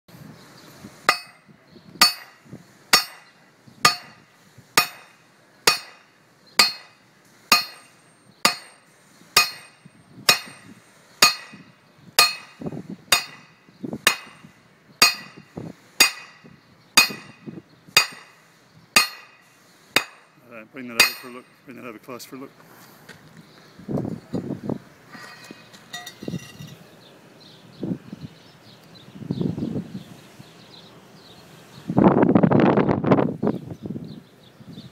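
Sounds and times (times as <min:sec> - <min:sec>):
hammer clanging on steel disc: 0:01.1 - 0:18.4, 0:19.0 - 0:21.6, 0:25.1 - 0:26.8.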